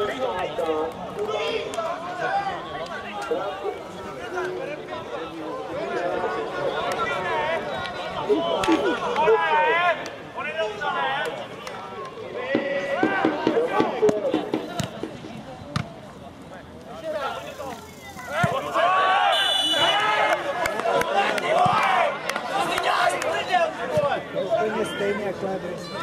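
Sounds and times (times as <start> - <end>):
people shouting: 12.4 - 14.9, 18.2 - 25.1
referee whistle: 19.3 - 20.1.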